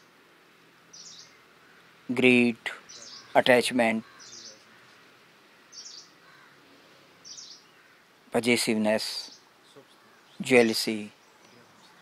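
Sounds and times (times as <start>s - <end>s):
faint outdoor background hiss: 0.0s - 12.0s
bird chirping: 0.8s - 1.9s, 2.6s - 12.0s.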